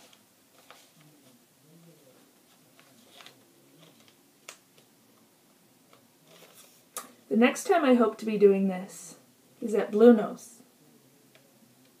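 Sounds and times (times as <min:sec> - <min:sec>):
paper rustling: 0:00.0 - 0:01.4, 0:02.1 - 0:04.9, 0:05.9 - 0:06.9.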